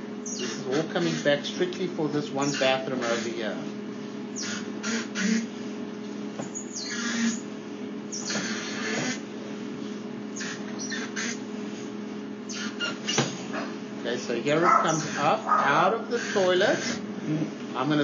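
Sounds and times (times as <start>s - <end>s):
electrical hum: 0.0s - 18.0s.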